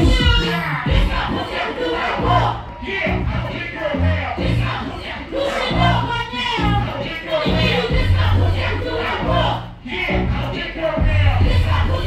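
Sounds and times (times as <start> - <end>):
people shouting over beat: 0.0 - 3.9
live hip hop over loudspeakers: 0.0 - 12.0
deep bass notes: 2.2 - 4.9, 5.7 - 12.0.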